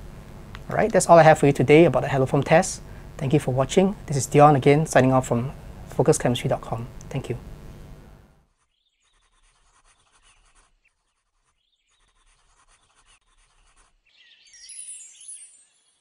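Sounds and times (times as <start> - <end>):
pencil scratching on paper: 8.5 - 14.1
high falling chirps: 14.2 - 16.0.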